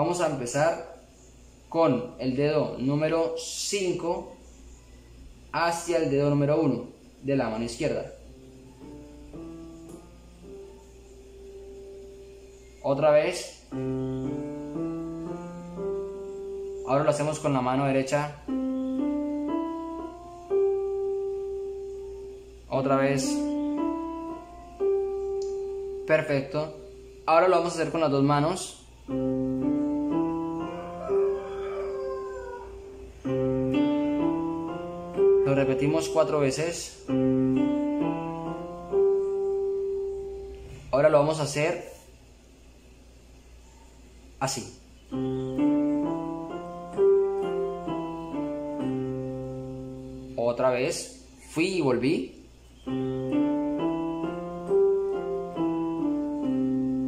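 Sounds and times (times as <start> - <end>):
slow piano notes: 7.6 - 28.4, 29.0 - 41.5, 45.0 - 51.6, 52.8 - 57.0
piano five-finger exercise: 45.1 - 50.1, 52.9 - 57.0.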